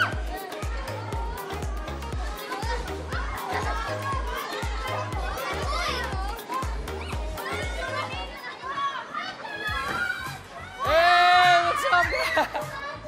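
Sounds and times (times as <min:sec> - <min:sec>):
music with steady bass beat: 0:00.0 - 0:08.3
children shouting and laughing: 0:00.0 - 0:13.0.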